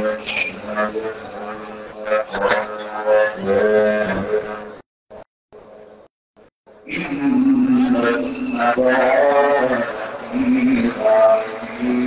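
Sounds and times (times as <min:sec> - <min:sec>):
man chanting into a microphone: 0:00.0 - 0:04.8, 0:06.9 - 0:12.0.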